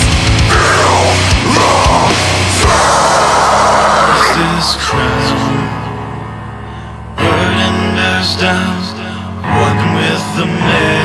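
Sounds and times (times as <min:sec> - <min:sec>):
heavy metal band playing: 0:00.0 - 0:08.7.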